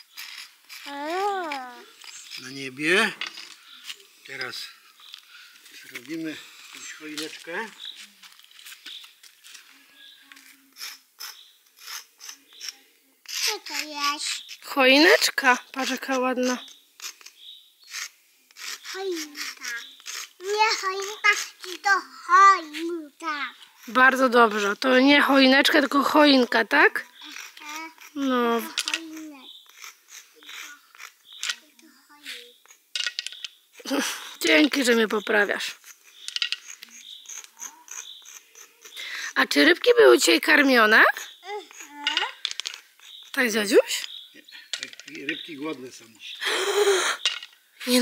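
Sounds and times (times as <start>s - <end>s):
chalk scraping on concrete: 0.0s - 32.9s, 34.4s - 44.2s
child's soft voice: 0.8s - 2.0s, 13.4s - 14.4s, 18.9s - 23.6s, 27.2s - 28.1s, 28.7s - 29.5s, 31.6s - 32.6s, 41.4s - 42.4s
pebbles clicking together: 32.7s - 33.6s, 35.8s - 39.0s, 41.7s - 43.4s.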